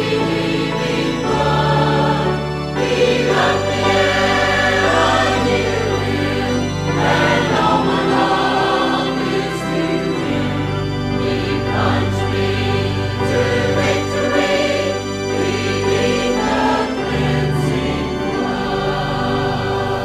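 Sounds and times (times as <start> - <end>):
choir singing a hymn: 0.0 - 20.0
instrumental accompaniment: 0.0 - 20.0.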